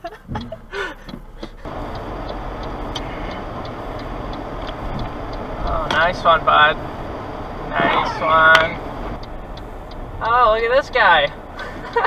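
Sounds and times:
laughter: 0:00.0 - 0:01.2, 0:11.6 - 0:12.0
car cabin engine and tyre noise: 0:00.0 - 0:12.0
light regular ticks: 0:01.1 - 0:06.9, 0:09.2 - 0:12.0.

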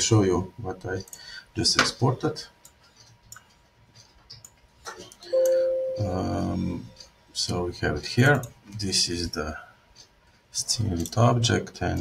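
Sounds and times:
chime-like tone: 0:05.3 - 0:06.3.

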